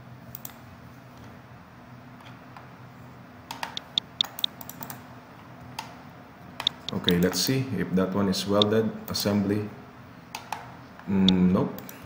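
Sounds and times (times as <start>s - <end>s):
low steady hum: 0.0s - 12.0s
keyboard and mouse clicking: 0.3s - 0.6s, 3.5s - 5.0s, 6.6s - 7.4s.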